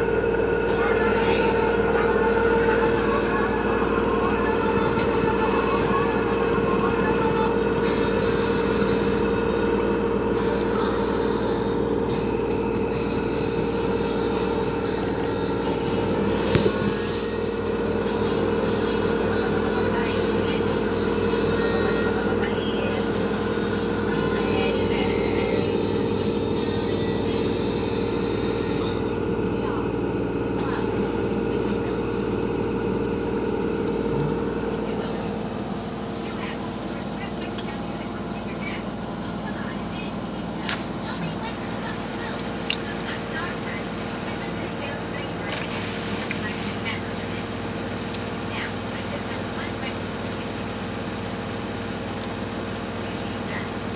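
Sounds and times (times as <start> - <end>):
washing machine spinning: 0.0 - 53.9.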